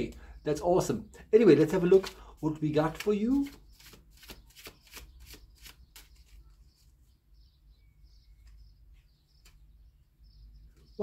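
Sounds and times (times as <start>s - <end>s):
cards shuffling and flicking: 1.8s - 2.2s, 2.8s - 6.4s.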